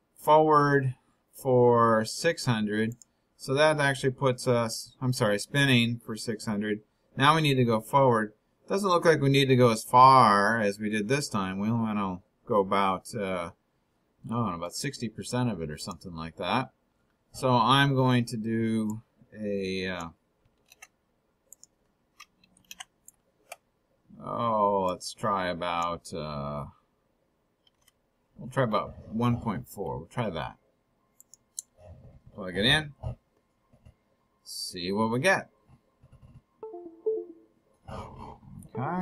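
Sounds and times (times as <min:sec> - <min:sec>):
mouse and keyboard clicks: 0:20.4 - 0:23.6, 0:27.6 - 0:28.0, 0:31.2 - 0:31.8
computer chime stepping down: 0:36.6 - 0:37.5.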